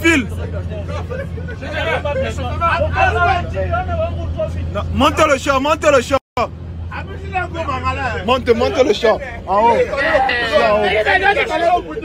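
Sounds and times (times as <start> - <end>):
bus engine low hum: 0.0 - 12.0
men chanting and talking: 0.0 - 12.0.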